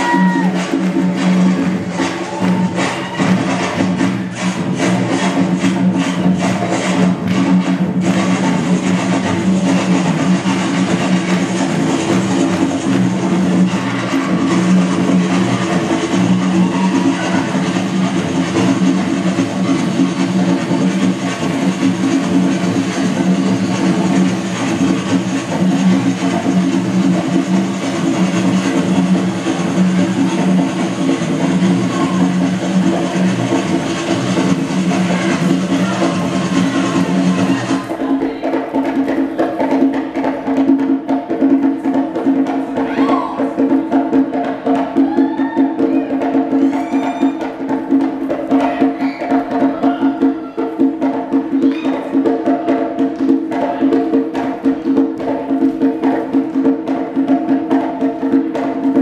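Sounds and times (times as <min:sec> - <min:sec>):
conga drum strikes: 0:00.0 - 0:59.0.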